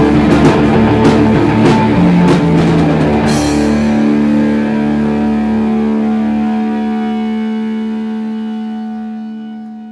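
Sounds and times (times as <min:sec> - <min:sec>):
electric guitar chord ringing: 0:00.0 - 0:09.9.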